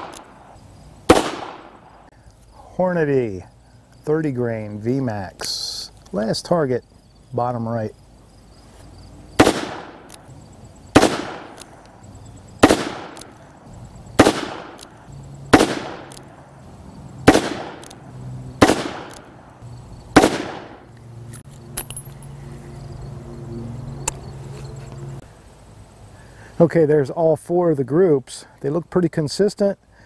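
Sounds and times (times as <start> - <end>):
revolver shots: 1.1 - 1.8, 17.2 - 18.0.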